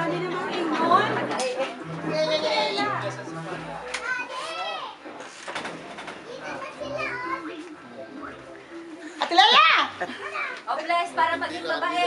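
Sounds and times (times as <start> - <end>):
adults chattering: 0.0 - 12.0
child's high-pitched voice: 6.3 - 7.6.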